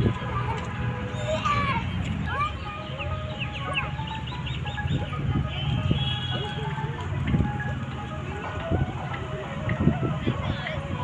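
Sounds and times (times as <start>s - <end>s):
birds chirping: 0.2s - 8.5s.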